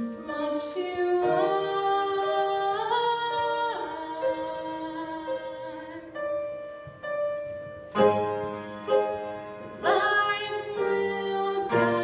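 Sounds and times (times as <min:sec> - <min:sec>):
piano: 0:00.0 - 0:12.0.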